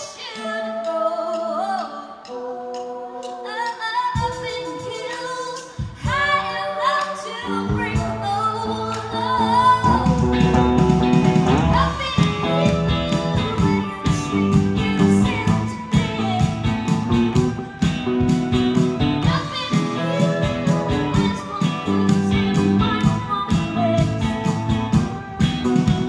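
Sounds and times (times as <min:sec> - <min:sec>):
female lead vocal: 0:00.0 - 0:26.0
drums: 0:03.6 - 0:26.0
bass: 0:07.4 - 0:26.0
electric guitar: 0:07.4 - 0:26.0.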